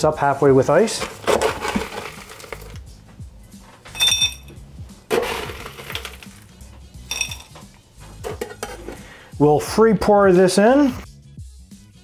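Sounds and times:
crushed ice crunching: 0:00.8 - 0:02.8, 0:05.1 - 0:06.5
glass clinking: 0:03.9 - 0:04.6, 0:07.0 - 0:07.6.

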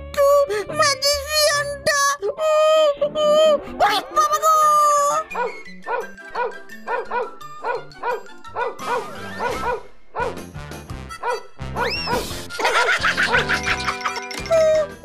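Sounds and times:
background music: 0:00.0 - 0:15.0
cartoon dog barking: 0:03.8 - 0:10.4, 0:11.2 - 0:12.3.

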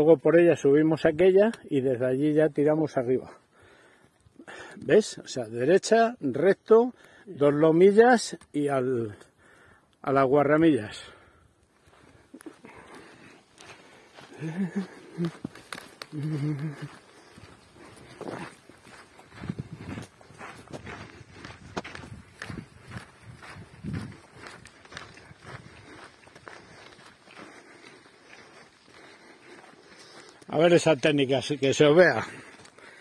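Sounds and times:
footsteps on gravel trail: 0:10.6 - 0:33.0.

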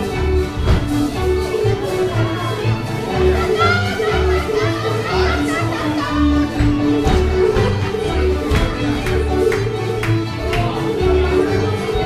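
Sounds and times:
string band playing dance tune: 0:00.0 - 0:12.0
voices of dancers: 0:00.0 - 0:12.0.

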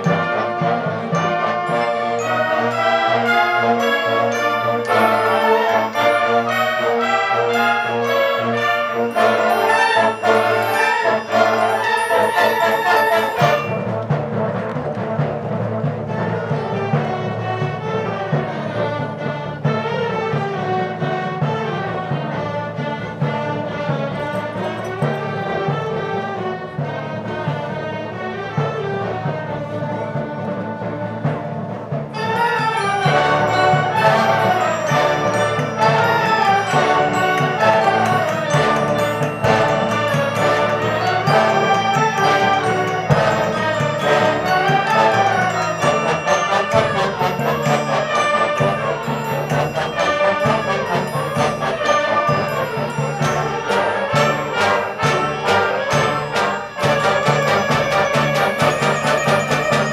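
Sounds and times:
concert band playing: 0:00.0 - 0:59.9.

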